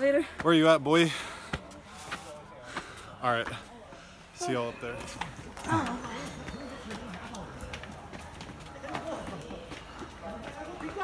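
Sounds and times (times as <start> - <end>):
footsteps climbing stairs: 4.9 - 11.0.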